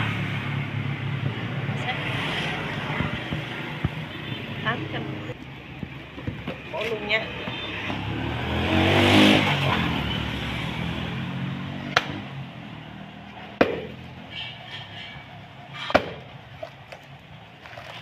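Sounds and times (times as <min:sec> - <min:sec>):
vehicle engine: 0:00.0 - 0:18.0
machete chopping coconut: 0:11.8 - 0:12.3, 0:13.5 - 0:14.2, 0:15.8 - 0:17.0.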